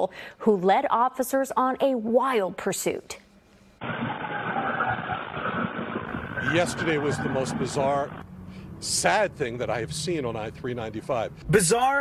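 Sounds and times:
highway traffic noise: 6.0s - 11.5s.

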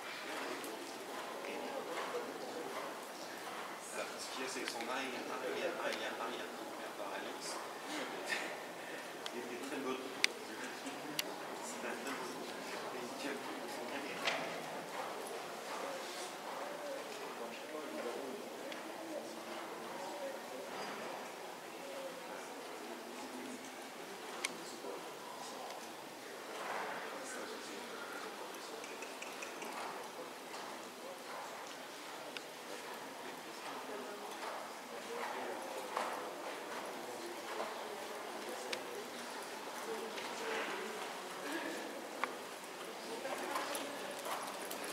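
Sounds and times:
faint background voices: 0.0s - 44.9s.

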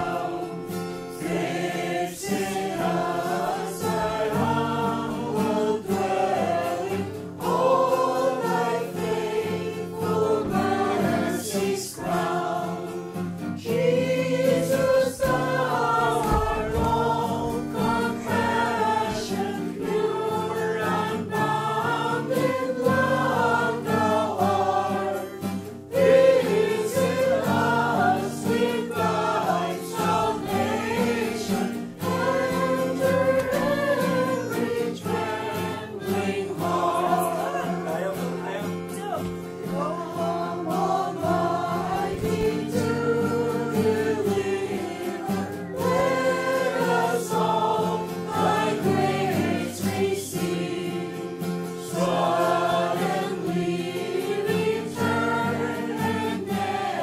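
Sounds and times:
choir singing: 0.0s - 57.0s.

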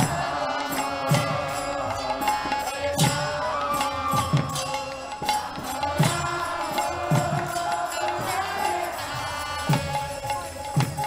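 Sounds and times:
drum beat: 0.0s - 11.0s
group chanting: 0.0s - 11.0s
hand cymbals striking: 0.0s - 11.0s.

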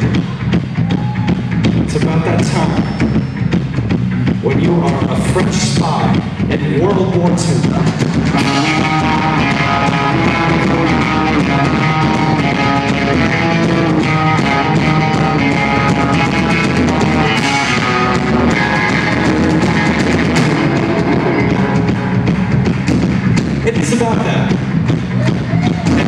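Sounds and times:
distorted clipping bass: 0.0s - 26.0s
drum kit: 0.0s - 26.0s
electric guitars: 0.0s - 26.0s.

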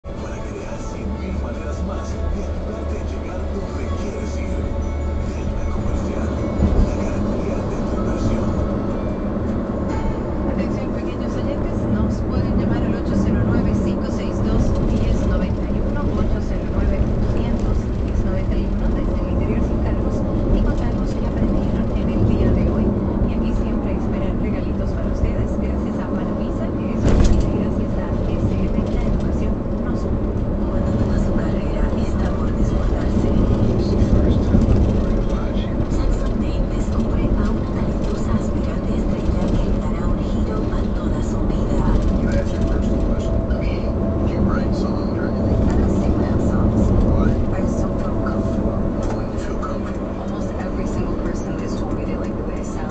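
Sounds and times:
road and engine rumble in car: 0.0s - 52.9s
voices from car radio: 0.0s - 52.9s.

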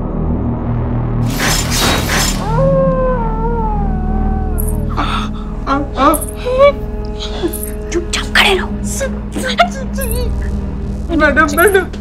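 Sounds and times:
suspense score low drone: 0.0s - 12.0s.

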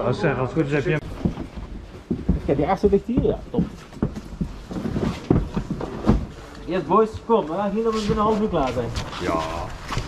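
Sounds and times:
boots and gear knocking: 1.0s - 10.0s.

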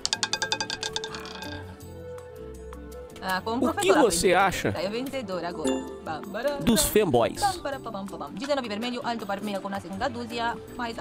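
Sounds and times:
roulette ball clattering: 0.0s - 1.9s
soft background music: 0.0s - 11.0s.

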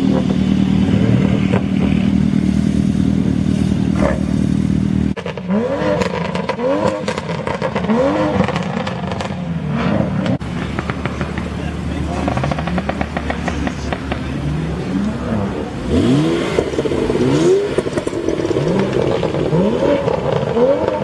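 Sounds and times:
car engine revving and pulling away: 0.0s - 21.0s
car engine revving in blips: 0.0s - 21.0s.

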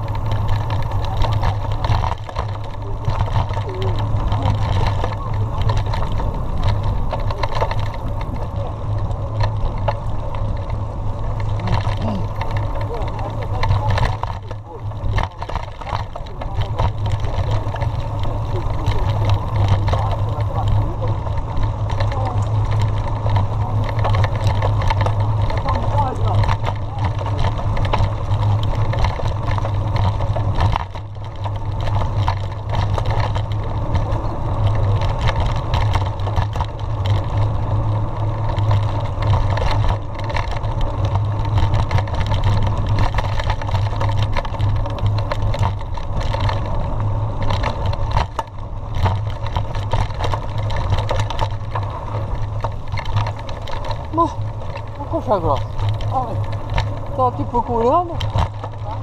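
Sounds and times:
bike knocks and rattles: 0.0s - 59.0s
wind rumble on microphone: 0.0s - 59.0s.

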